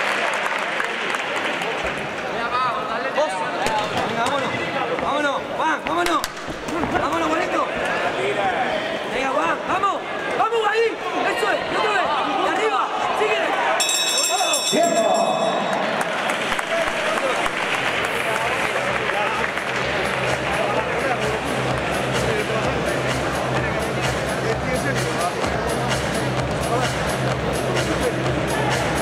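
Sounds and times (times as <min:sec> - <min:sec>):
boxing ring bell ringing: 0:13.8 - 0:16.2.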